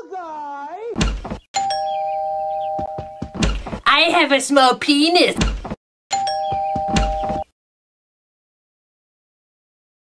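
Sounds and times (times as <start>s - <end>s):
two-tone doorbell chime: 1.6s - 3.3s, 6.1s - 7.5s.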